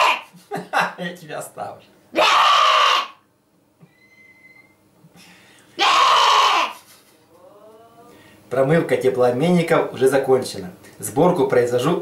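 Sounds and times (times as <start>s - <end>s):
faint thin whistle: 3.8s - 4.8s.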